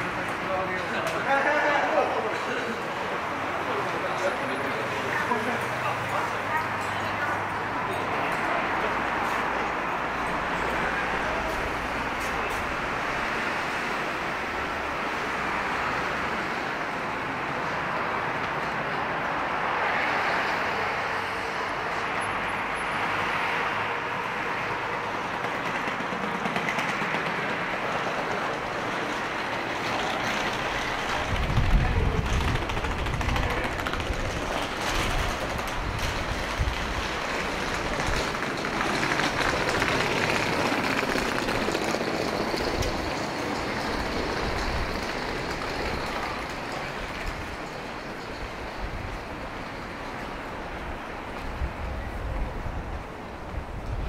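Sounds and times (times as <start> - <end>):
road traffic: 0.0 - 54.0.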